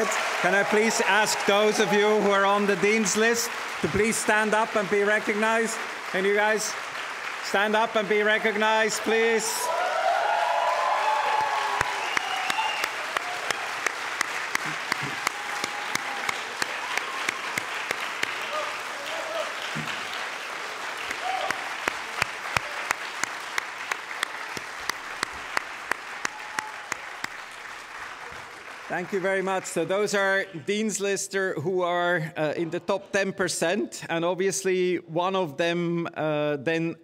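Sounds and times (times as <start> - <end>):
audience clapping: 0.0 - 30.6.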